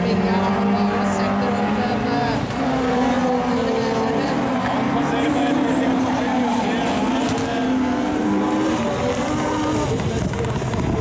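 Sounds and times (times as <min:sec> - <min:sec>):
race car engines at high revs: 0:00.0 - 0:11.0.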